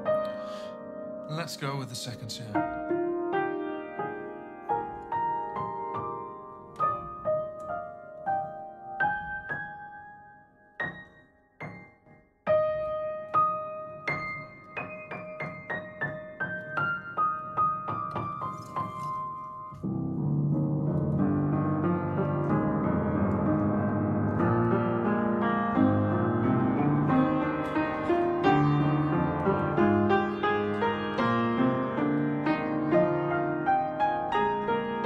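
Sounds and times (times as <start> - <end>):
upright piano playing: 0.0 - 35.0.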